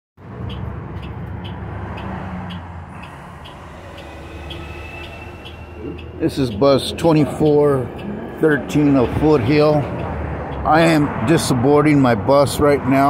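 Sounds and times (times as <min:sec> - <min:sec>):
bus engine humming: 0:00.2 - 0:13.0
road noise: 0:00.2 - 0:13.0
thin high steady tone: 0:02.9 - 0:09.1.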